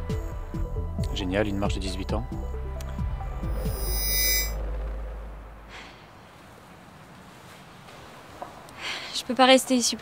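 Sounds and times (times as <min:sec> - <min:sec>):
high shimmer: 0:03.4 - 0:04.6.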